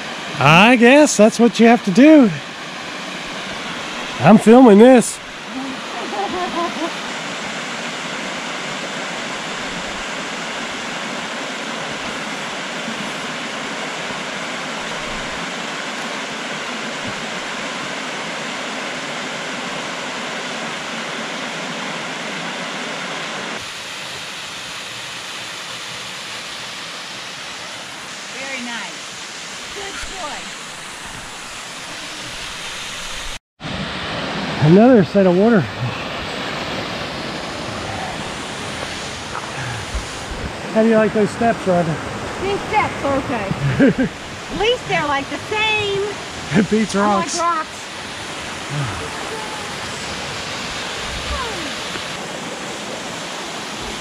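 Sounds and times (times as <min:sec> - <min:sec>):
waterfall rushing: 0:00.0 - 0:54.0
faint voices: 0:48.7 - 0:50.0.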